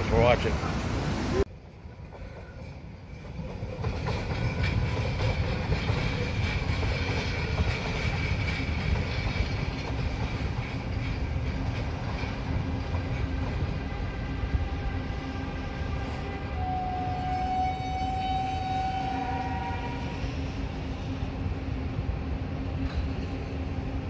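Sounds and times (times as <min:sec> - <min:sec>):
train rumbling on rails: 0:00.0 - 0:24.0.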